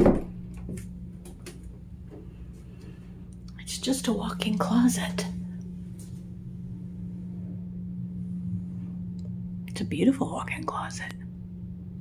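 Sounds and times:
closet door thump: 0.0 - 0.4
low steady hum: 0.0 - 12.0.

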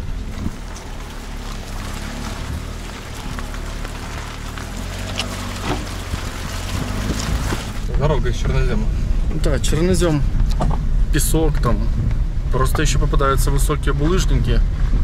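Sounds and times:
car engine hum: 0.0 - 15.0
tyres hissing on gravel: 0.2 - 7.9
stones knocking: 0.2 - 8.0.

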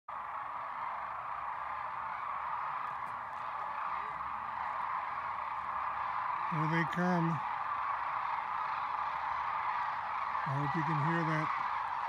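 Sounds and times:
flock of cranes calling: 0.1 - 12.0.

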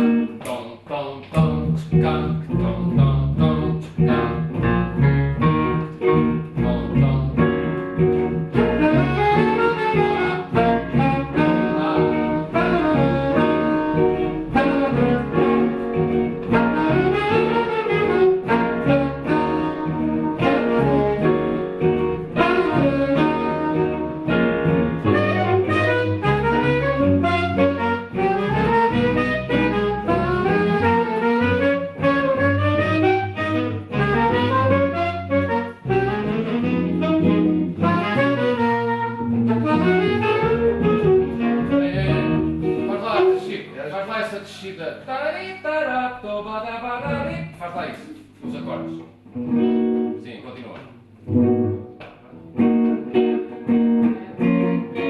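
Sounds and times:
electric guitar: 0.0 - 0.5, 1.3 - 43.6, 48.2 - 55.0
electric bass: 1.4 - 43.3, 47.0 - 47.6
digital piano: 1.5 - 43.6
saxophones playing melody: 3.4 - 43.6.

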